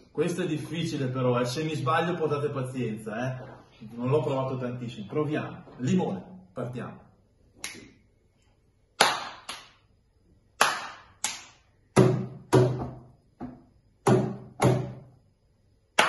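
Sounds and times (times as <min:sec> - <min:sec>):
hand claps: 0:07.6 - 0:07.9, 0:09.0 - 0:09.9, 0:10.6 - 0:12.8
finger snaps: 0:07.6 - 0:08.0.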